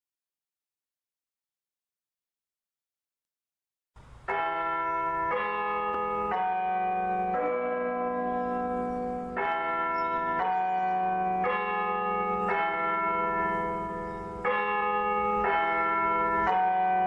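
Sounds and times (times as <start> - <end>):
church bells ringing: 4.2 - 17.0.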